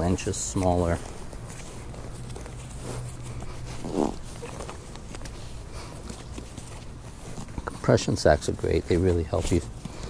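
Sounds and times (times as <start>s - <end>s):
straps scuffing on stuff sack: 0.0s - 10.0s.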